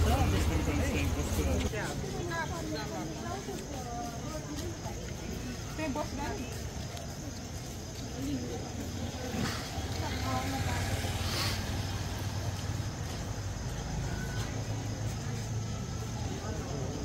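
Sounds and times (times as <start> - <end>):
motor traffic rumble: 0.0 - 17.0
passers-by voices: 0.0 - 17.0.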